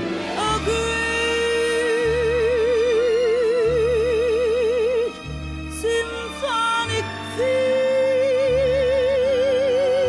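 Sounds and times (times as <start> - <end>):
string orchestra: 0.0 - 10.0.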